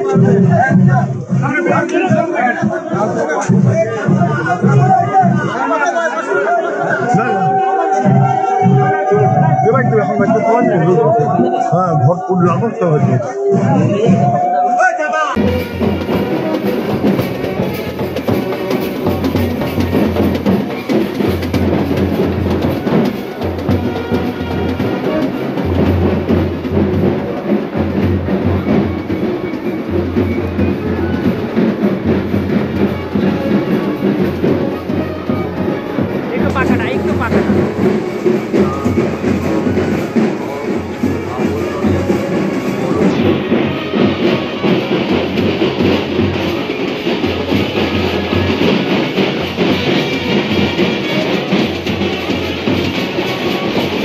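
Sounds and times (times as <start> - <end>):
drums beating steadily: 0.0 - 54.0
procession band music: 0.0 - 54.0.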